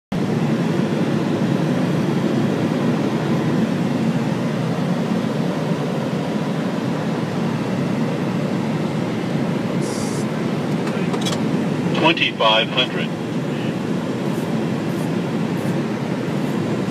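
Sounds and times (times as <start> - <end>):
airflow and engine rush: 0.1 - 16.9.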